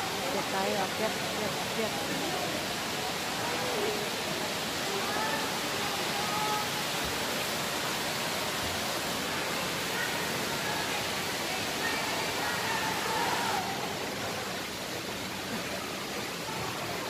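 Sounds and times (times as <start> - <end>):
fountain water rushing: 0.0 - 17.0.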